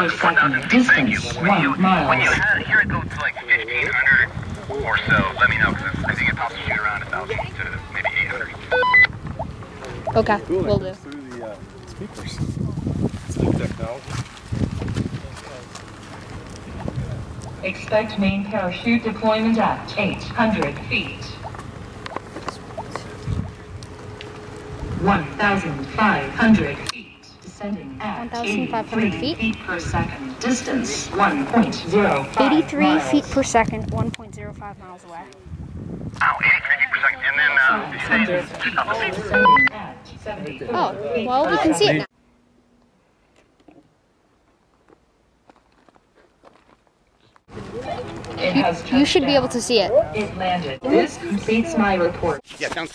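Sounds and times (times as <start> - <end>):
wind buffeting microphone: 1.1 - 8.0, 9.1 - 26.9, 28.7 - 36.5
low rumbling gust: 1.6 - 8.6, 11.6 - 36.7.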